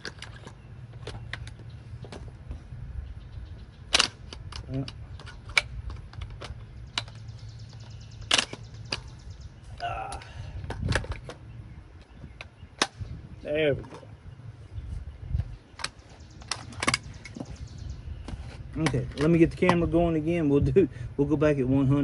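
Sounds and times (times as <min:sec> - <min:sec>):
metallic clicks of rifle handling: 0:03.9 - 0:07.3, 0:08.2 - 0:09.0.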